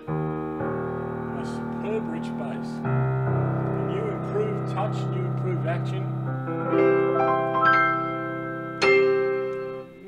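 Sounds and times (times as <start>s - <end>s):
piano playing low bass chords: 0.0s - 10.0s.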